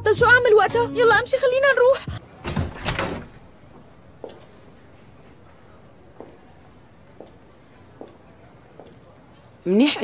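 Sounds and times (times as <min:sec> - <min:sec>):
door opening: 0:02.4 - 0:03.6.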